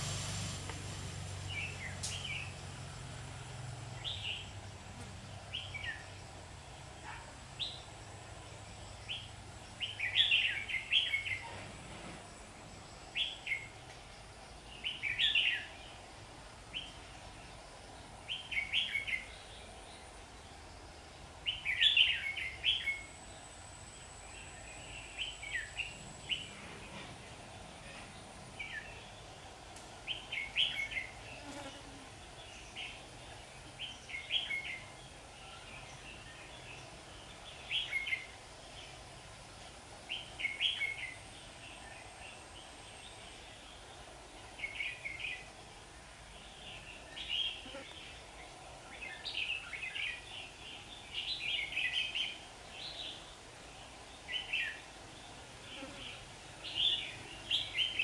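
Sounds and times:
bird chirping: 8.8 - 11.6, 18.3 - 29.3.

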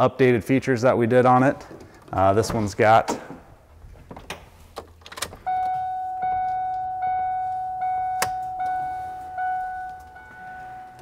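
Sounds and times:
door-open warning chime: 5.4 - 11.0.

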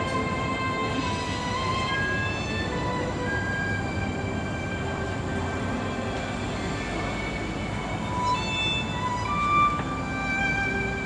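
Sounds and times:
held string notes: 0.0 - 11.0.

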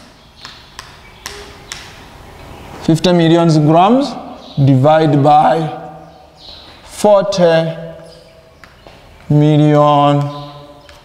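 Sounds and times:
chalk tapping on blackboard: 0.4 - 2.0.

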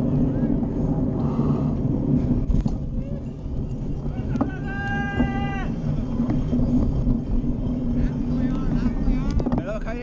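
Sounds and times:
low rumble: 0.0 - 10.0
wind on microphone: 0.0 - 10.0.

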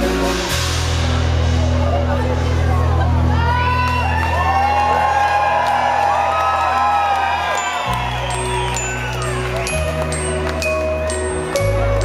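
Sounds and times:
crowd whooping and cheering: 2.8 - 12.0.

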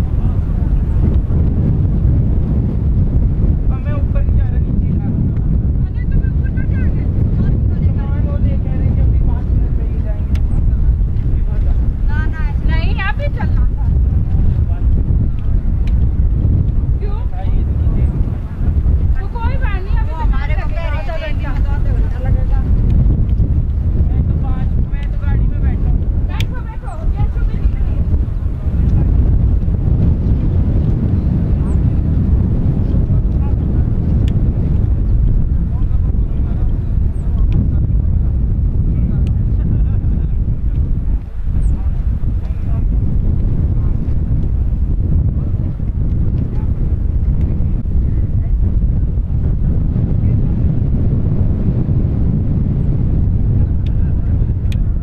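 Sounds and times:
wind buffeting microphone: 0.0 - 55.0
faint voices: 23.9 - 30.0, 30.6 - 55.0.

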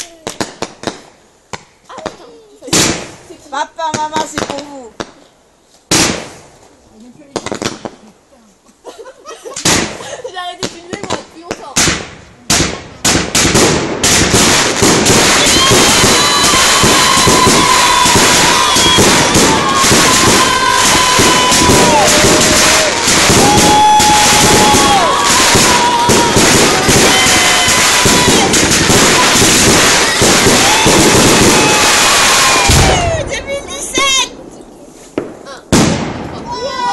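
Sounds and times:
firework pops: 0.0 - 5.3, 5.9 - 8.2, 9.6 - 10.0, 10.6 - 31.8, 33.9 - 36.4
fireworks crackling: 0.0 - 36.9
firework whistles: 14.4 - 33.3.

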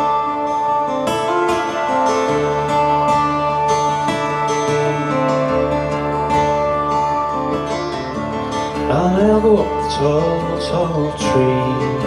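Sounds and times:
acoustic guitar playing: 0.0 - 12.0.

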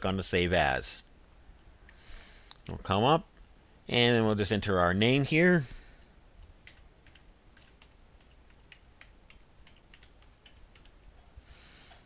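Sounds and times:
faint keyboard typing: 6.4 - 11.3.

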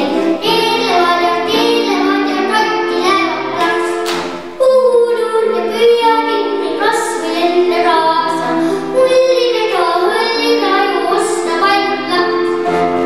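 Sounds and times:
children singing into microphones: 0.0 - 13.0.

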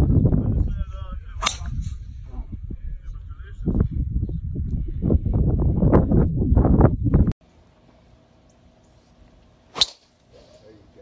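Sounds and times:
wind buffeting microphone: 0.0 - 7.4.

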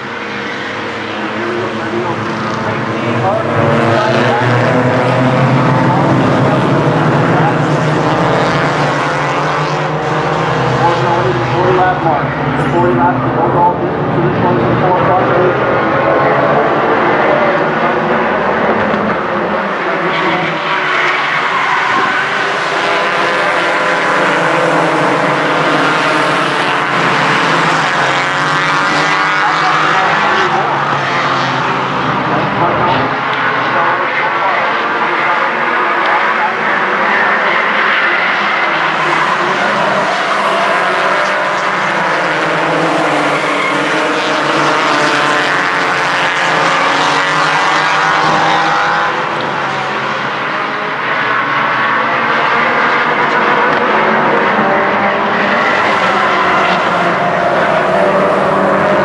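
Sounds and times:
race car engines passing by: 0.0 - 59.0.

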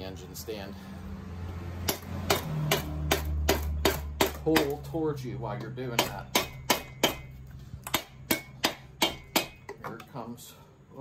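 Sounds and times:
mallet striking metal: 5.6 - 9.8.

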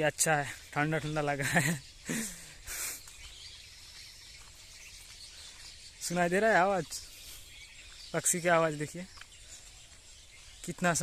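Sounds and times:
birds chirping and calling: 0.0 - 11.0
outdoor background hush: 0.0 - 11.0.

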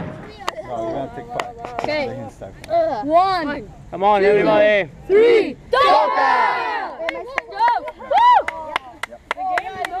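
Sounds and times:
voices calling out: 0.0 - 10.0
boys shouting a cheer: 4.5 - 10.0.

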